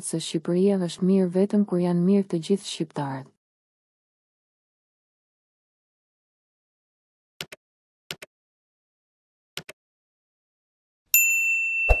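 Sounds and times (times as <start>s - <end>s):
notification bell ding: 11.2s - 12.0s.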